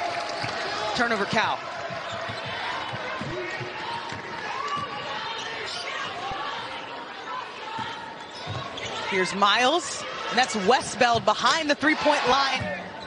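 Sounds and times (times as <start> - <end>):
arena crowd murmur: 0.0 - 13.0.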